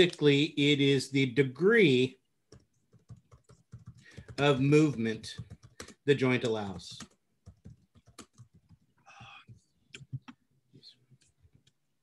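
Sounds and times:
computer keyboard typing: 2.5 - 10.4.

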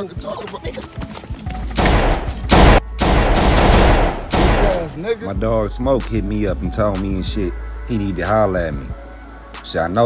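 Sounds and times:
handgun firing rapidly: 1.8 - 4.9.

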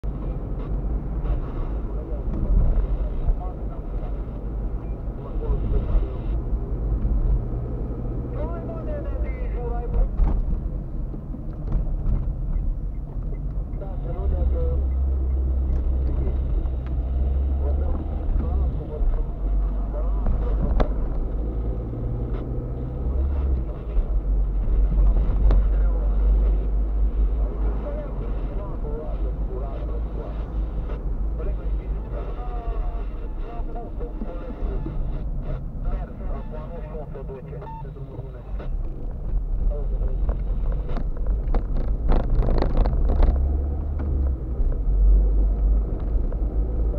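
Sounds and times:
car engine droning: 0.0 - 46.9
road noise inside car: 0.0 - 46.9.

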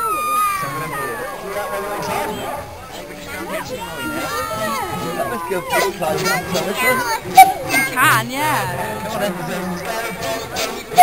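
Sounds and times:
indistinct voices: 0.0 - 11.0
high-pitched calls: 2.1 - 11.0.

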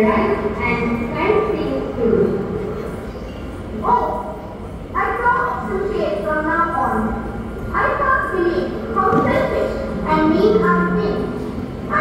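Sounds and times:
girl speaking: 5.0 - 7.1, 7.8 - 12.0.

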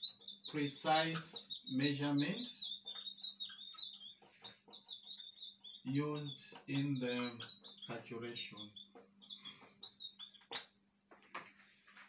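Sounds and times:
marker squeaking on whiteboard: 0.0 - 12.0.

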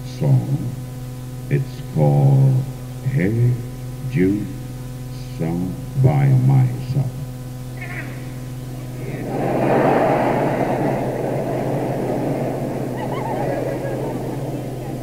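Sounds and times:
cassette tape hum: 0.0 - 15.0
crowd applause: 8.7 - 15.0.

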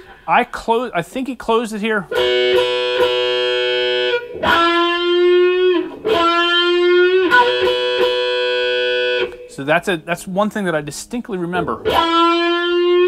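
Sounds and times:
electric guitar with wah pedal: 2.1 - 9.6, 11.6 - 13.0.

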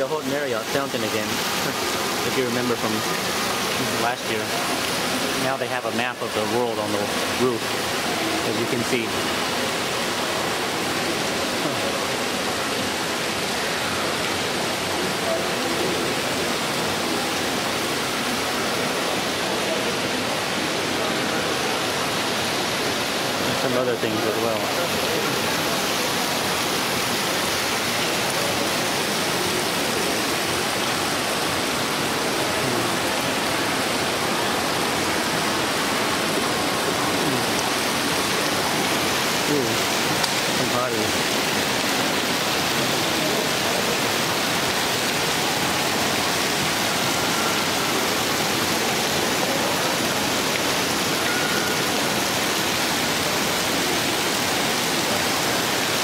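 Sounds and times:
fountain water splashing: 0.0 - 56.0
murmur of voices: 9.8 - 44.7.

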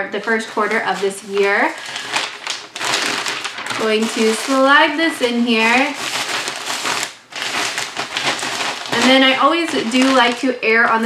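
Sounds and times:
plastic and tissue paper rustling: 0.0 - 11.0.

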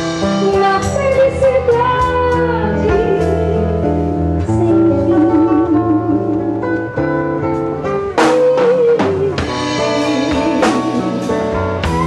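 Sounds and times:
acoustic guitar: 0.0 - 12.0
drums: 0.0 - 12.0.

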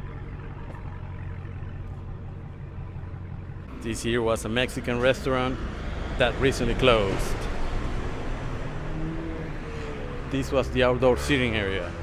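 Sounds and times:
engine idling: 0.0 - 8.8
city street traffic hum: 0.0 - 12.0.

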